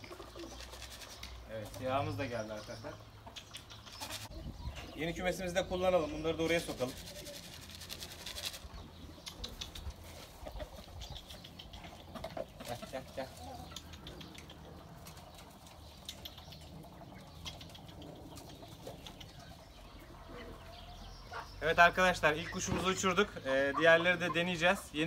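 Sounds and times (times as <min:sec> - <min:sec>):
pigeons cooing: 0:00.0 - 0:01.5, 0:06.9 - 0:21.6.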